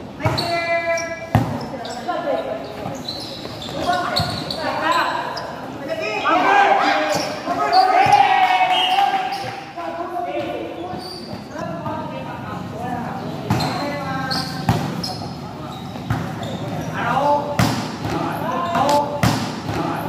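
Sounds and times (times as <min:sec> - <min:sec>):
people shouting and calling: 0:06.0 - 0:10.6
volleyball thumps: 0:17.5 - 0:20.0.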